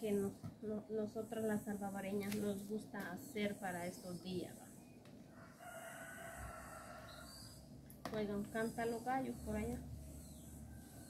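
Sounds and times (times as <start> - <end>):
rooster crowing: 5.3 - 7.6.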